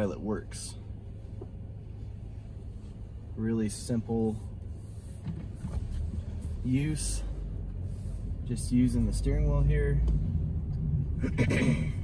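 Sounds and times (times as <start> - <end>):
car road and engine rumble: 0.0 - 12.0
person coughing: 11.2 - 12.0.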